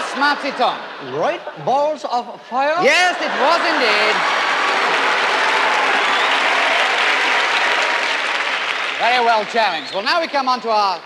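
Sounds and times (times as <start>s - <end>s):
audience applauding: 2.9s - 10.9s.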